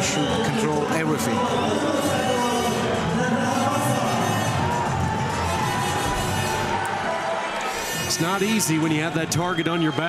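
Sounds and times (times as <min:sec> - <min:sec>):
crowd cheering: 0:00.0 - 0:10.0
music playing: 0:00.0 - 0:10.0.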